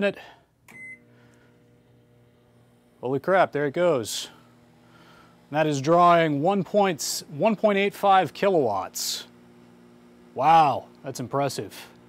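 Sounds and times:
microwave oven humming: 0:00.2 - 0:12.0
microwave keypad beep: 0:00.7 - 0:01.1.

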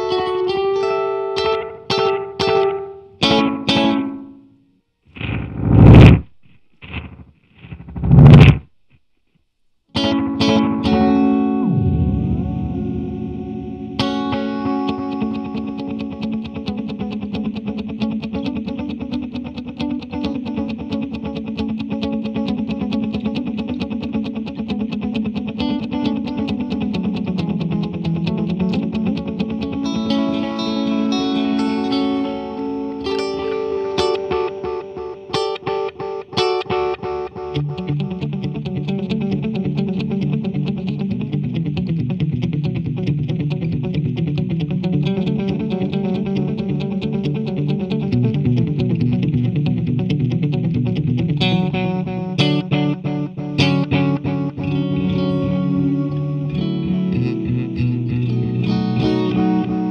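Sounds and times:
electric guitar with delay: 0:10.0 - 0:59.9.

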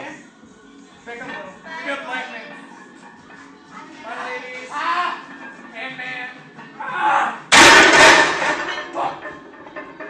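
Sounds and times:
barbell crashing onto metal rack: 0:07.5 - 0:10.0.

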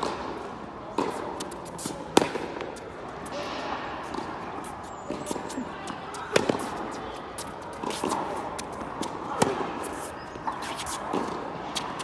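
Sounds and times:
racket striking tennis ball: 0:00.0 - 0:05.6, 0:06.3 - 0:12.0
footsteps on hard court: 0:01.0 - 0:12.0.

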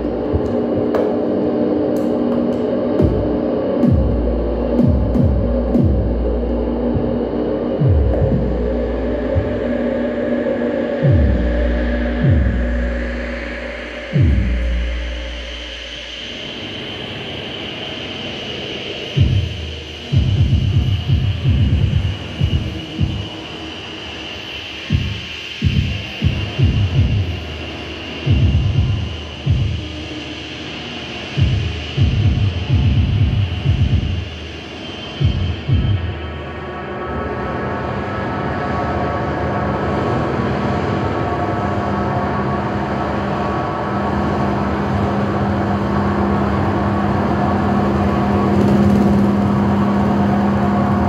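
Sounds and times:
drum kit: 0:02.0 - 0:06.2, 0:24.9 - 0:27.4.

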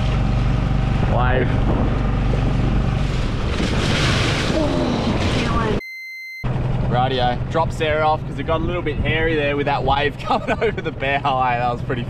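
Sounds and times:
wind rumble on microphone: 0:00.8 - 0:05.8.

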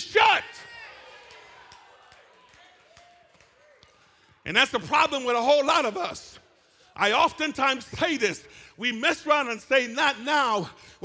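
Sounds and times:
echo of man's voice: 0:00.0 - 0:00.7, 0:04.4 - 0:11.0.

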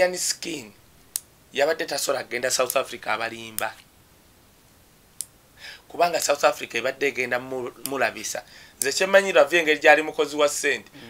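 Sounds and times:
person speaking: 0:00.0 - 0:00.8, 0:01.5 - 0:03.9, 0:05.7 - 0:11.0
soft breath-like hiss: 0:05.5 - 0:05.9, 0:08.4 - 0:08.8.

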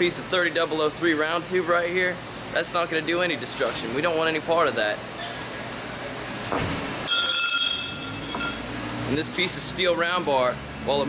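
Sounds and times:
metal tube clattering and ringing: 0:07.1 - 0:08.6.

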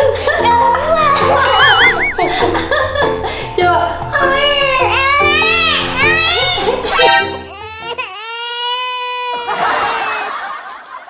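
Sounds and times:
background music: 0:00.0 - 0:08.4
baby wailing: 0:04.9 - 0:10.3.

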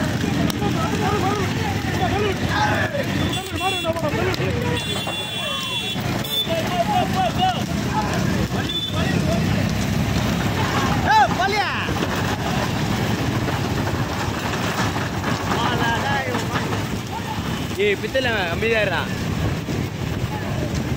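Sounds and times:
men shouting: 0:00.0 - 0:13.1
motorcycle engine and road noise: 0:00.0 - 0:20.9
loud yell: 0:10.6 - 0:11.6.

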